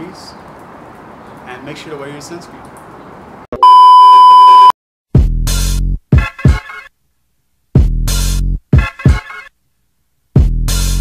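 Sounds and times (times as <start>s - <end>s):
electronic bleep tone: 3.6s - 4.7s.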